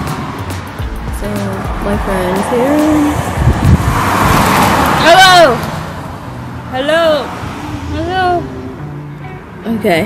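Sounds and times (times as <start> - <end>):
vehicle passing close by: 0.0 - 10.0.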